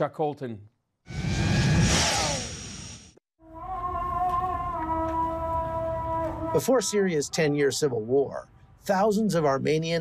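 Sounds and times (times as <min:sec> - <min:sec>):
whoosh with low rumble: 0:01.1 - 0:03.1.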